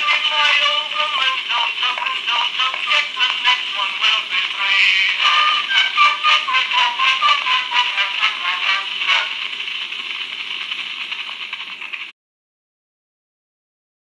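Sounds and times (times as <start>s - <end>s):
thin hissy instrumental music: 0.0s - 11.7s
stylus hiss: 0.0s - 12.1s.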